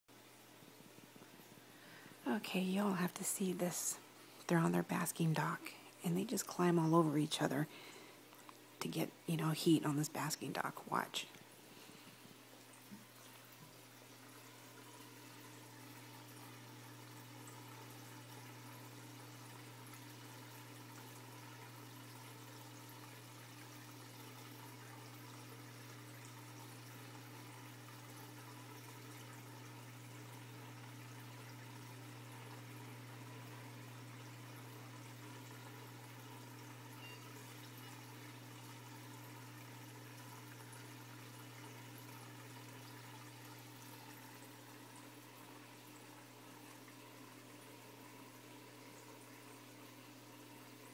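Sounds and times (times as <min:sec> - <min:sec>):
water filter humming: 0:00.1 - 0:50.9
water trickling: 0:00.1 - 0:50.9.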